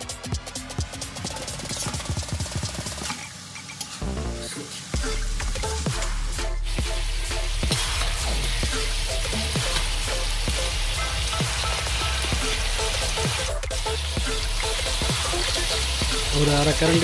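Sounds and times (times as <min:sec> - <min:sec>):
chicken sizzling in a wok: 0:03.0 - 0:17.0.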